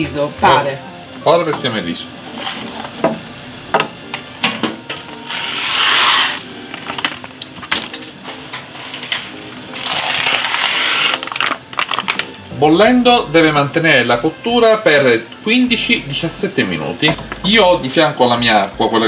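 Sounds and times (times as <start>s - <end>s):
rice grains pouring: 5.3s - 6.5s, 9.8s - 12.0s.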